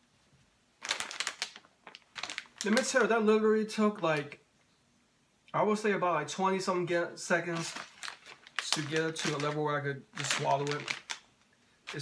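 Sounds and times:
plastic snack bags crinkling: 0.8 - 3.3, 7.4 - 12.0.

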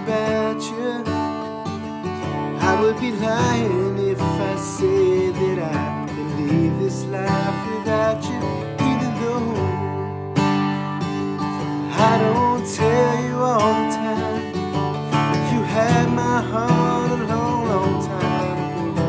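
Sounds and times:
man singing: 0.0 - 10.5, 11.6 - 19.0
acoustic guitar strumming chords: 0.0 - 19.0.

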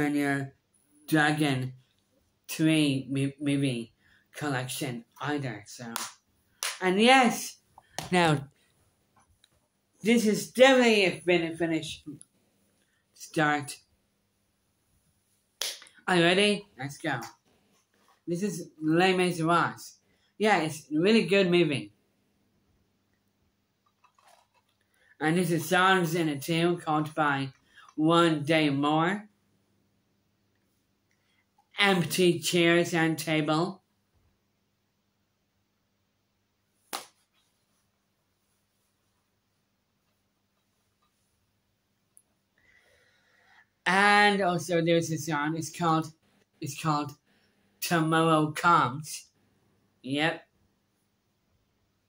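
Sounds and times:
hand clap: 5.9 - 6.9, 7.9 - 8.2, 15.6 - 15.9, 36.9 - 37.2.

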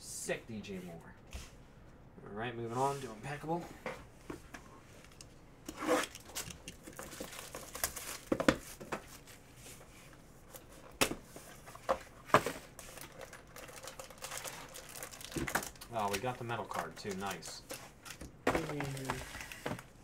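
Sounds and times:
plastic wrapping crinkling and tearing: 6.0 - 8.4, 12.7 - 20.0.

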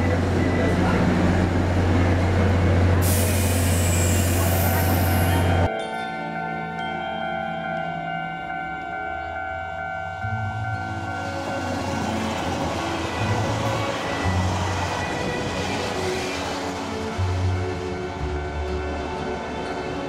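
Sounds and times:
train rushing over rails: 0.0 - 5.7, 9.2 - 20.0
background music: 4.8 - 20.0.

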